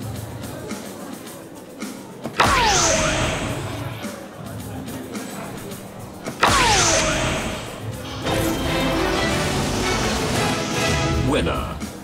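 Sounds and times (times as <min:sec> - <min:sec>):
dartboard sound effect burst: 0:02.4 - 0:03.7, 0:06.3 - 0:07.8.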